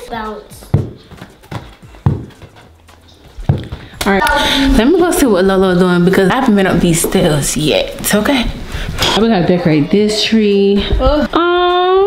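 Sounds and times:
ball bouncing with dull thuds: 0.5s - 4.1s.

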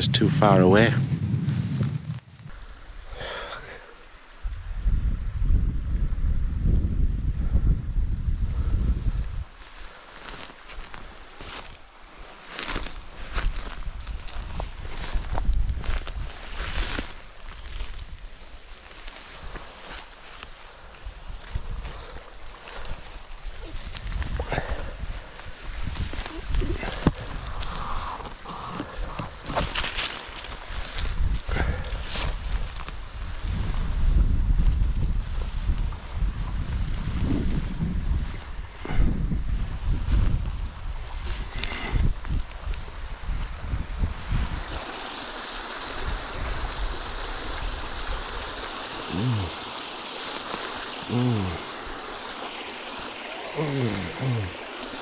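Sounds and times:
fern fronds rustling: 8.9s - 55.0s
running water hiss: 9.6s - 33.9s, 41.1s - 55.0s.

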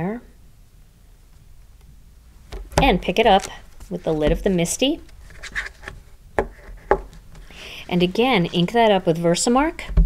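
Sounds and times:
paper rustling: 2.9s - 9.0s.

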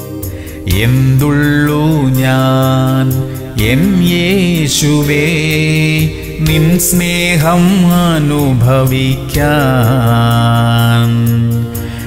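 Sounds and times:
man singing devotional song: 0.4s - 12.0s.

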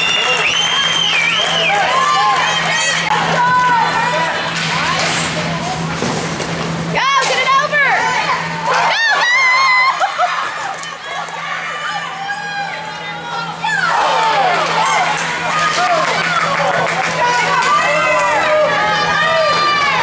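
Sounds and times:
low rink hum: 0.0s - 20.0s
crowd shouting: 8.0s - 20.0s.

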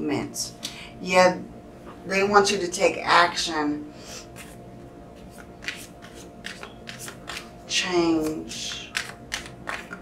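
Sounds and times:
woman speaking: 0.0s - 3.9s, 7.7s - 9.0s.

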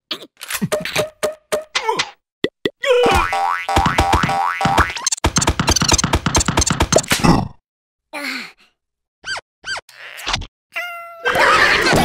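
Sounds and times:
cartoon springy boings: 3.0s - 6.7s.

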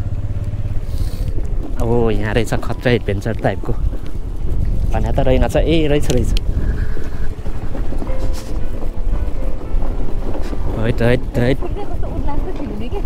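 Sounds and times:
scooter engine running: 0.0s - 13.0s
tyres on gravel: 0.0s - 13.0s
wind on microphone: 1.3s - 13.0s.

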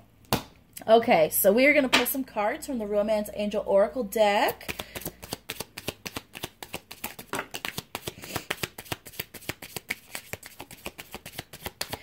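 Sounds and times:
cards being shuffled: 4.6s - 12.0s.

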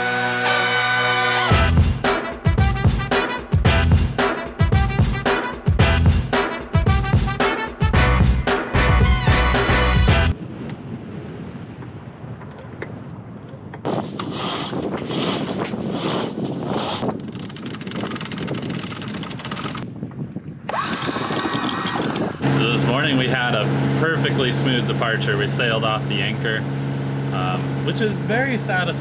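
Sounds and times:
intro music: 0.0s - 10.4s
wind buffeting microphone: 10.3s - 24.1s
steady motor hum: 20.7s - 29.0s.

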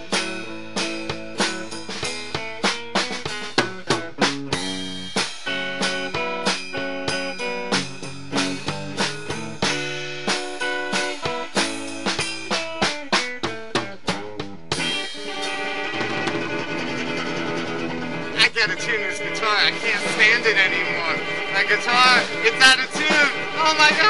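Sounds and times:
guitar picked notes and chords: 0.0s - 24.0s
voices: 18.3s - 24.0s.

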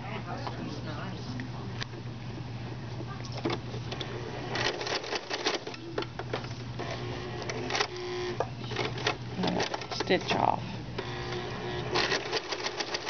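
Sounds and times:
sewing machine motor running: 11.0s - 13.0s.

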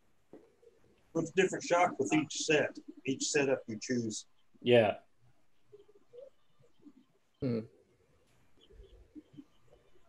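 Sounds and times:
person saying hmm: 7.4s - 7.7s.

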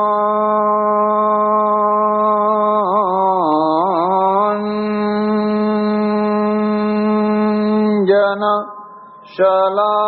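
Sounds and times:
person chanting a prayer: 0.0s - 10.0s.

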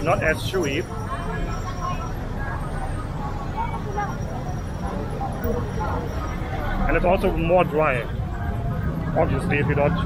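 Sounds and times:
faint voices of people: 0.0s - 10.0s
low street rumble: 0.0s - 10.0s.

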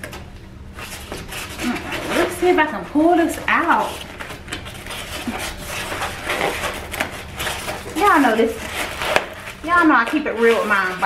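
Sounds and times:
foam scraping against cardboard: 3.3s - 11.0s.

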